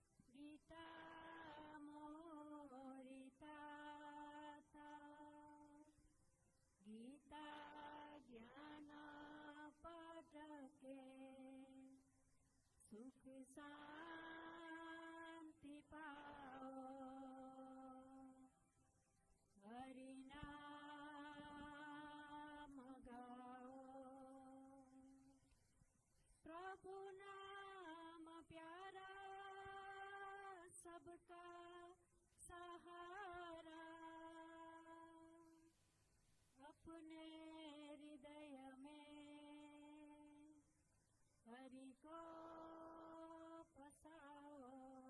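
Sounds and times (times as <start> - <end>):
person singing devotional song: 0.0 - 18.8, 19.5 - 25.6, 26.3 - 35.8, 36.5 - 40.8, 41.4 - 45.0.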